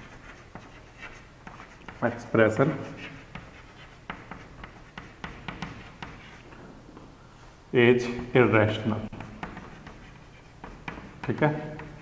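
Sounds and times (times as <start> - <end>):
chalk tapping and scratching: 0.0 - 6.5, 9.1 - 12.0.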